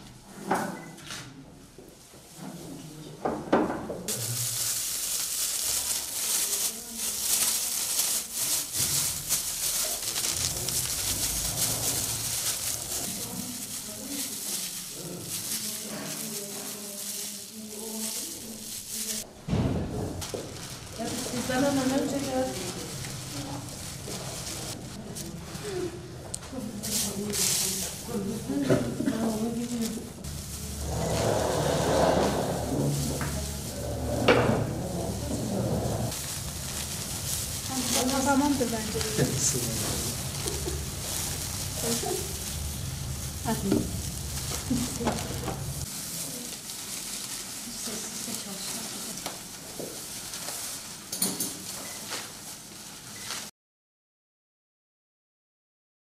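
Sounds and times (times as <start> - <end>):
dried fruit rustling and crackling: 4.1 - 53.4
plastic bags crinkling: 4.1 - 53.5.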